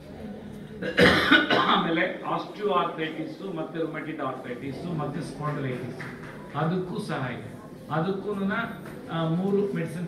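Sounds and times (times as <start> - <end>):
man coughing into microphone: 0.8 - 2.0.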